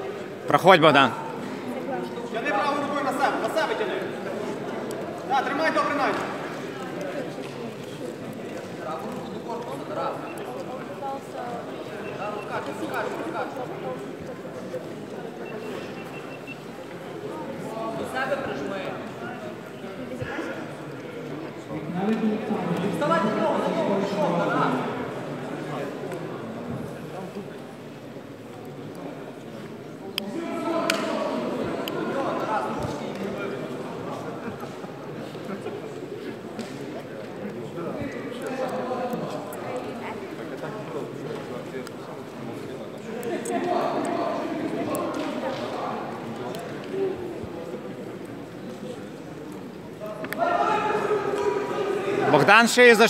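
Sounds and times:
indistinct background talk: 0.0 - 53.0.

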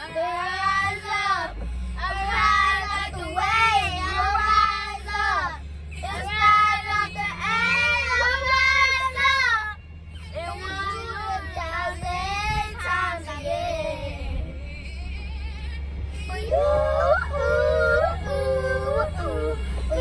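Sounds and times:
girls singing together: 0.0 - 14.5, 15.2 - 20.0
van engine rumble: 0.0 - 20.0.

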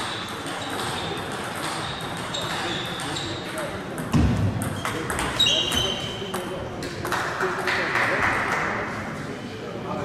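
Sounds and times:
murmur of voices: 0.0 - 10.0
ping pong ball clicks: 0.1 - 3.2
brief high squeak: 4.8 - 6.2.

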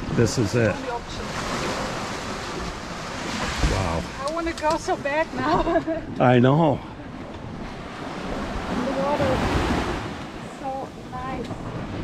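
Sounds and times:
small waves washing up beach: 0.0 - 12.0
wind on microphone: 7.0 - 12.0.

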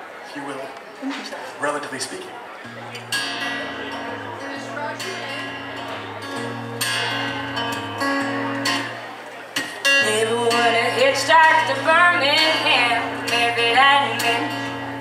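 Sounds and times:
acoustic guitar strumming: 2.6 - 15.0.

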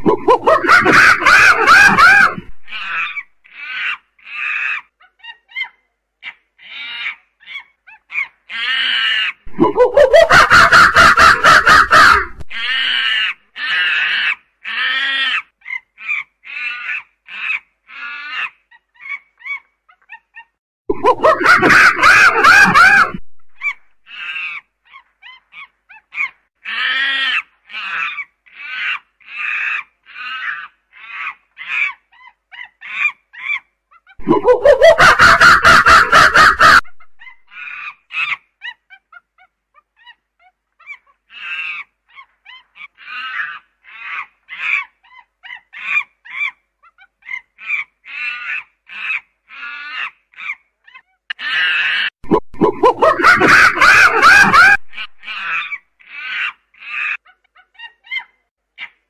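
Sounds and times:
primate screaming outburst: 0.0 - 4.9, 8.5 - 15.5, 21.0 - 24.6, 51.3 - 57.2.

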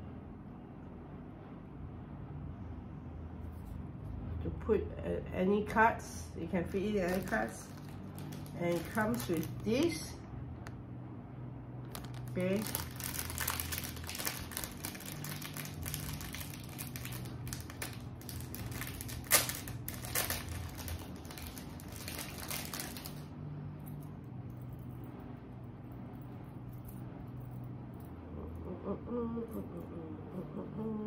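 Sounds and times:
plastic packaging crinkling: 6.8 - 10.0, 11.9 - 23.3.

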